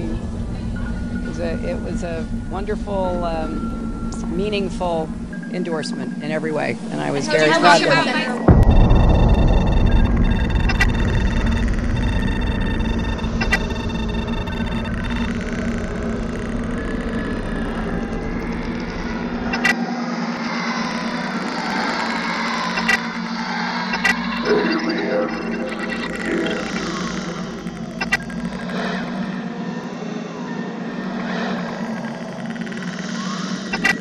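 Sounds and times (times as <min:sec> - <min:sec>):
low heavy rumble: 0:00.0 - 0:07.5, 0:08.4 - 0:19.8
high electronic tones: 0:00.0 - 0:19.8, 0:20.8 - 0:29.5, 0:31.0 - 0:34.0
steady hum: 0:00.0 - 0:34.0
sharp clicks: 0:08.5 - 0:19.8, 0:20.7 - 0:24.6, 0:25.3 - 0:29.4, 0:31.1 - 0:34.0.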